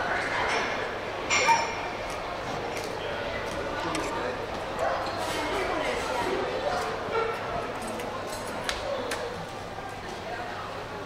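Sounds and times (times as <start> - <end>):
voices chattering in a hall: 0.0 - 11.0
cutlery and crockery clinking: 1.3 - 1.8.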